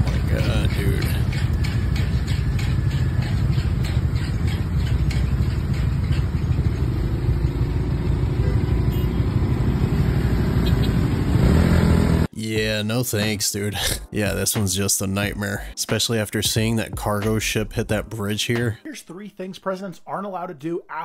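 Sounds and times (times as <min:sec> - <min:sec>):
engines idling in traffic: 0:00.0 - 0:12.3.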